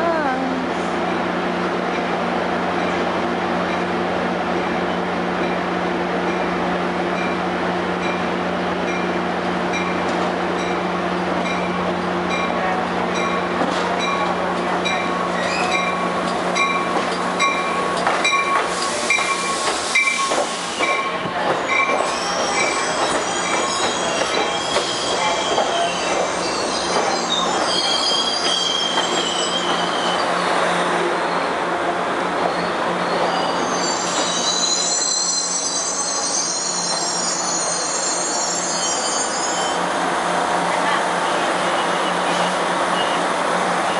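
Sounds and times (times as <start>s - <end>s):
train pulling into platform: 0.0s - 43.9s
train wheels squealing: 15.3s - 16.9s, 17.5s - 31.6s, 32.4s - 39.9s.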